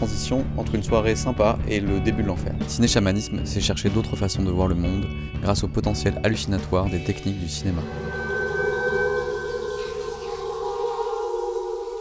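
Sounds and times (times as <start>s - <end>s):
ambient drone music: 7.7s - 12.0s.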